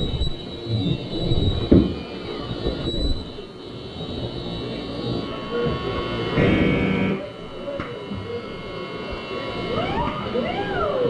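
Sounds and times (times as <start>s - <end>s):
club room noise: 0.0s - 11.0s.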